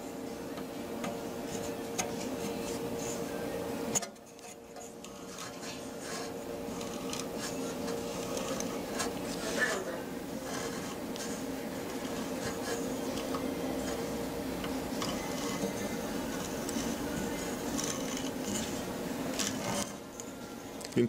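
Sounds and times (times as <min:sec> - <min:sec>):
fiber optic illuminator humming: 0:00.0 - 0:21.0.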